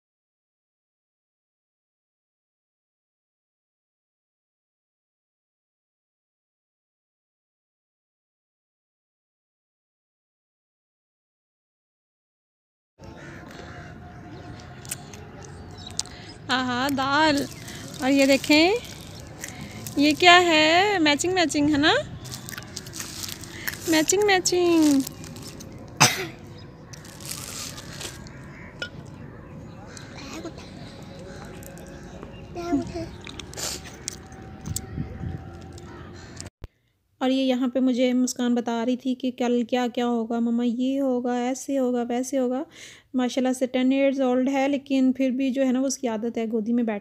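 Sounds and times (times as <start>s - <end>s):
crow cawing: 13.0s - 14.4s, 26.5s - 32.4s, 35.0s - 36.5s
faint bird calls: 13.0s - 16.5s, 26.3s - 36.5s
outdoor background noise: 13.0s - 47.0s.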